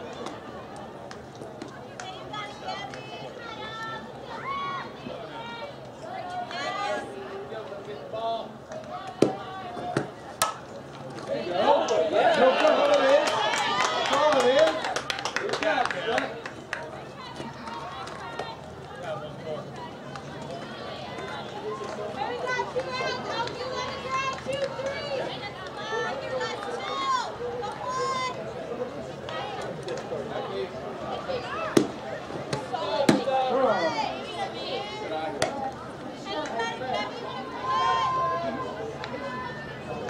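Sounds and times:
spectators shouting and clapping: 8.7s - 28.5s, 29.1s - 30.7s, 31.3s - 40.0s
bat hitting ball: 10.0s - 10.6s.

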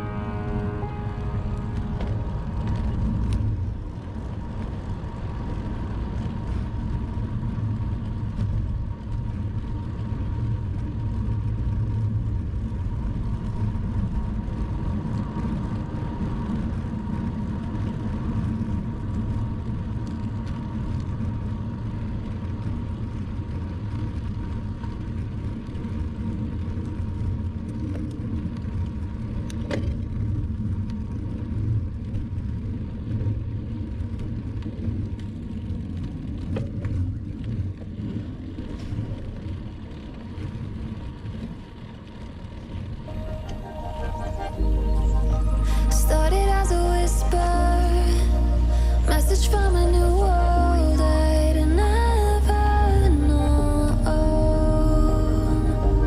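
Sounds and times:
faint steady tone: 0.0s - 4.4s, 43.1s - 56.0s
bicycle tyre rumble: 0.0s - 56.0s.

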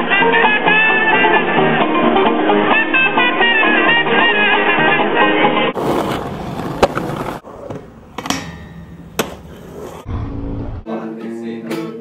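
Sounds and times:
rough rumbling noise: 10.0s - 10.9s.

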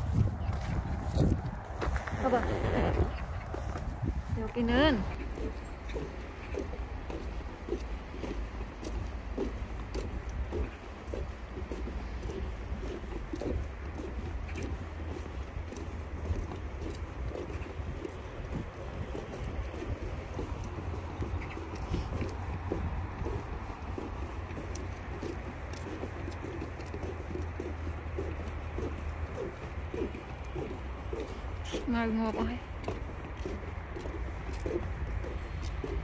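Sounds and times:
low rumble: 0.0s - 5.4s
footsteps on wooden boardwalk: 0.0s - 36.0s
wind rumble on microphone: 0.0s - 36.0s.

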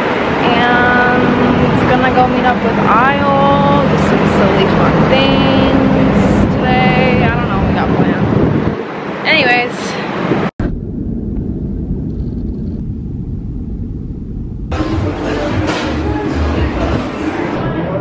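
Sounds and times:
low rumble of subway station: 0.0s - 18.0s
street traffic engine hum: 0.0s - 18.0s
voices: 0.4s - 8.3s, 9.2s - 10.2s.

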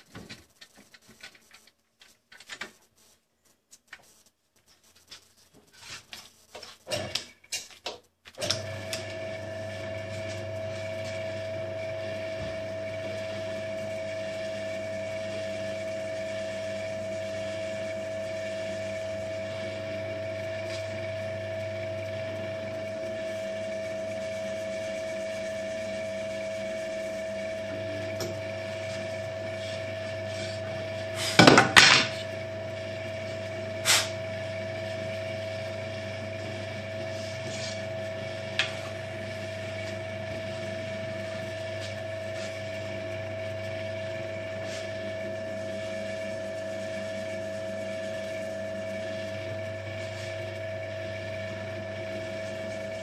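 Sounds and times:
drill press motor humming: 8.4s - 53.0s.

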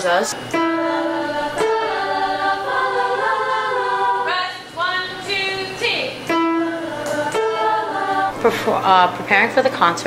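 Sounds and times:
mixed-voice chorus singing: 0.4s - 9.1s.

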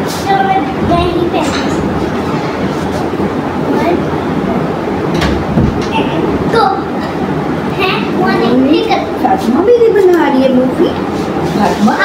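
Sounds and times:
children's voices: 0.0s - 2.4s, 5.8s - 9.2s
loud steady rushing noise: 0.0s - 12.0s.

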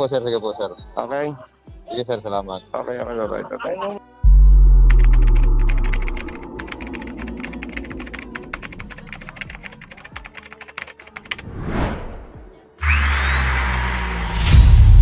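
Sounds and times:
deep bass hit: 4.3s - 6.6s
keyboard typing clicks: 4.8s - 11.4s
whoosh: 11.4s - 12.4s.

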